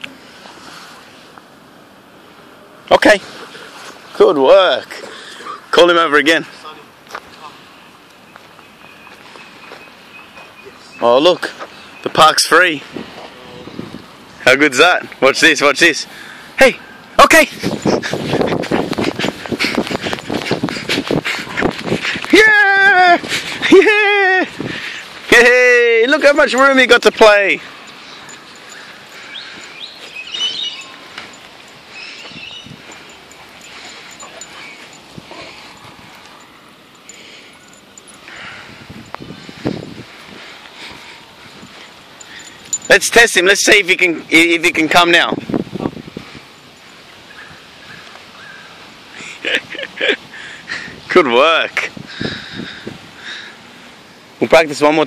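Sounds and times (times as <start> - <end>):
dogs panting: 17.5 - 22.3, 27.6 - 43.1
high chirps: 26.2 - 39.7.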